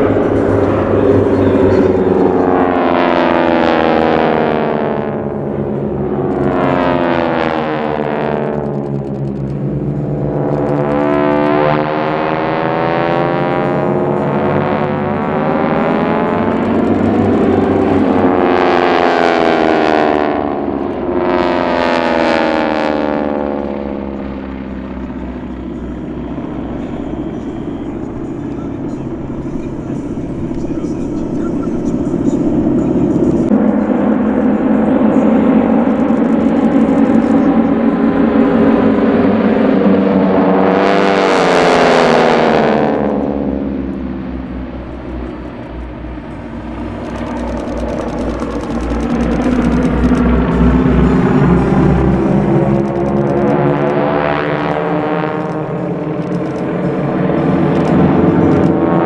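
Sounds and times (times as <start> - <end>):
propeller planes droning overhead: 0.0 - 59.0.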